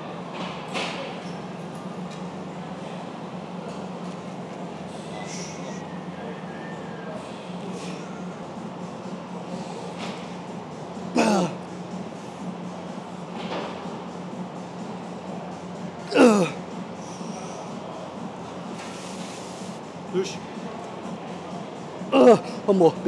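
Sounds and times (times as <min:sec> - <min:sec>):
steady low hum: 0:01.3 - 0:23.0
man grunting with effort: 0:11.2 - 0:11.6, 0:16.1 - 0:16.6, 0:22.1 - 0:22.7.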